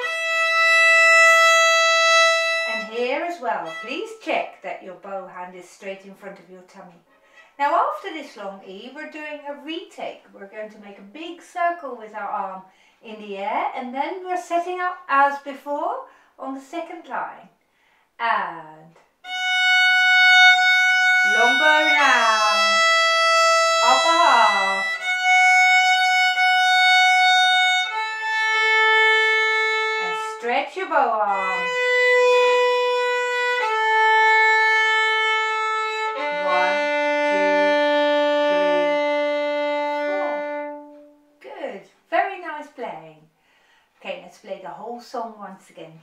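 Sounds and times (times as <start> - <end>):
violin long bowed note: 0.0 - 4.2, 19.2 - 41.4.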